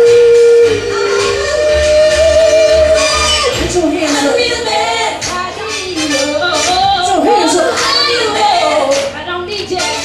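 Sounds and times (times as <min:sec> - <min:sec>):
bass beat: 0:00.0 - 0:10.0
woman singing long notes: 0:00.0 - 0:10.0.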